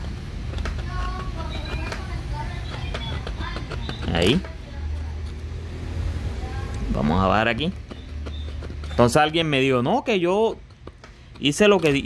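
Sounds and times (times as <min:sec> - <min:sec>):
metal file scraping plastic: 0:00.6 - 0:05.5, 0:07.4 - 0:09.8.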